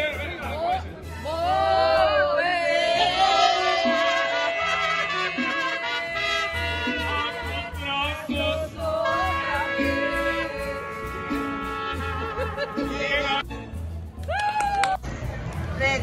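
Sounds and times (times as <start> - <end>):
mariachi band playing: 0.0 - 14.4
person singing: 2.2 - 11.5.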